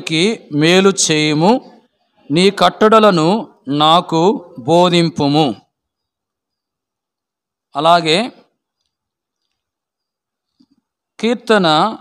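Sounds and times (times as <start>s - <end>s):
man speaking into a microphone: 0.0s - 5.7s, 7.7s - 8.5s, 11.2s - 12.0s.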